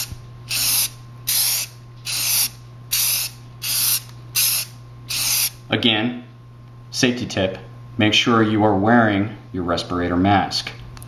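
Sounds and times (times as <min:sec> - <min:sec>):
spray can hissing: 0:00.0 - 0:05.6
steady low hum: 0:00.0 - 0:11.0.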